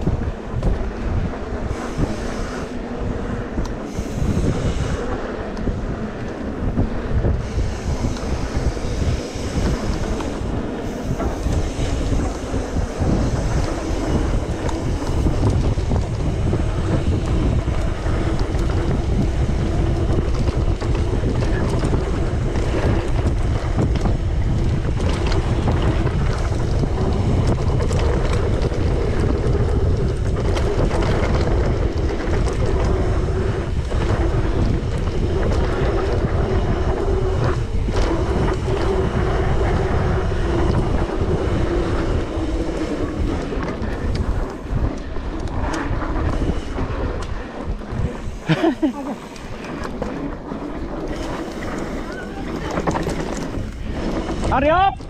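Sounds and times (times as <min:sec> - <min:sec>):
bike clicks and knocks: 0:00.0 - 0:55.0
tyres rumbling on dirt trail: 0:00.0 - 0:55.0
wind buffeting microphone: 0:00.0 - 0:55.0.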